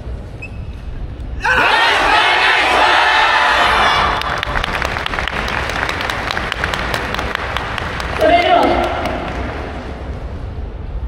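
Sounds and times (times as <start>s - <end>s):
group shout: 1.4s - 4.2s
audience applauding: 3.7s - 10.1s.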